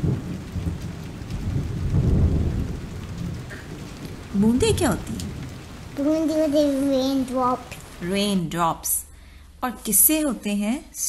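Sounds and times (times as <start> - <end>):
low rumble of thunder: 0.0 - 8.0
rain: 0.0 - 10.1.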